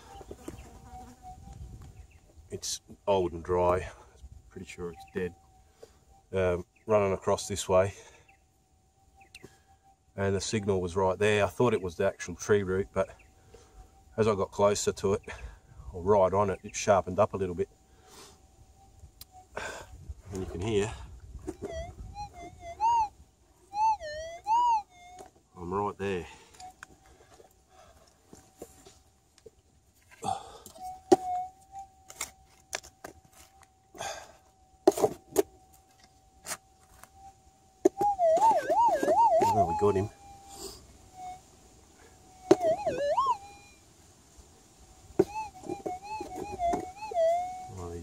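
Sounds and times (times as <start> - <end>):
warbling detector signal: 0.0 - 5.6, 18.6 - 26.9, 30.3 - 34.2, 34.9 - 43.9, 45.2 - 48.0
metal detector target tones: 34.8 - 41.4, 42.3 - 43.8, 45.2 - 47.8
metal detector threshold hum: 35.2 - 41.4.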